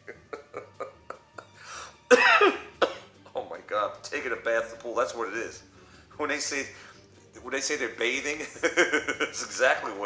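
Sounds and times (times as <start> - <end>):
man coughing: 2.1 - 3.1
man speaking: 3.3 - 6.8.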